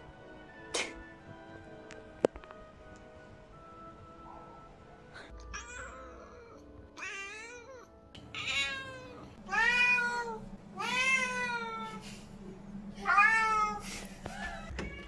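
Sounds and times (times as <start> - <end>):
cat meowing: 5.4 - 12.0.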